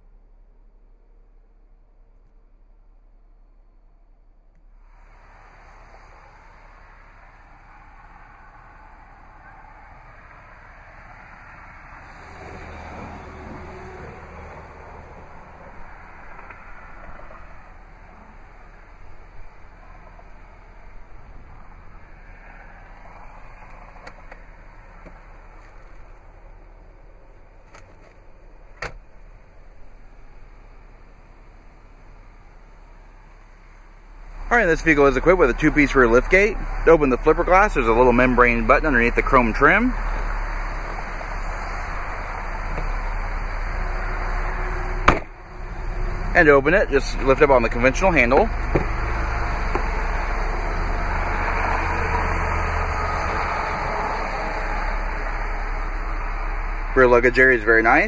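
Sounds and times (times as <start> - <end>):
low rumble: 0.0 - 58.0
outdoor background noise: 0.0 - 58.0.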